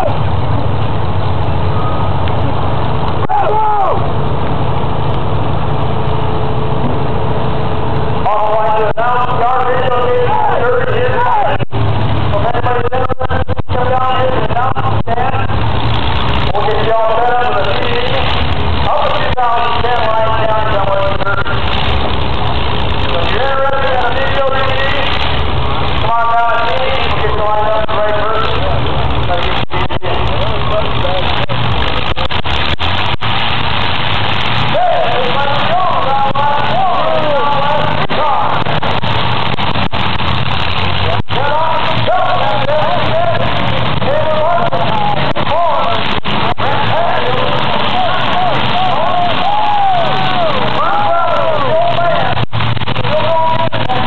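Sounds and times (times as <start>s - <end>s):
voices: 0.0s - 5.3s, 8.0s - 54.0s
car engines rumbling: 0.0s - 54.0s.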